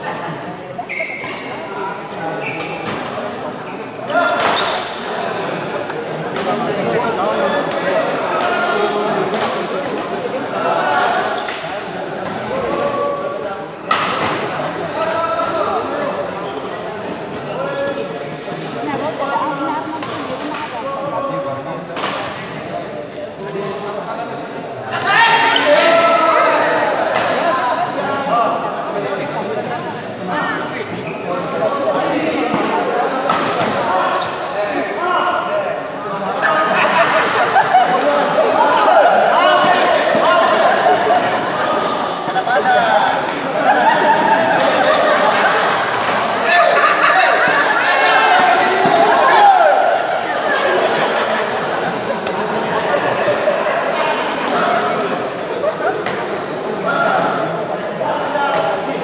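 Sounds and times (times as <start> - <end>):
chatter of spectators: 0.0 - 59.0
rackets hitting shuttlecock: 45.8 - 46.4.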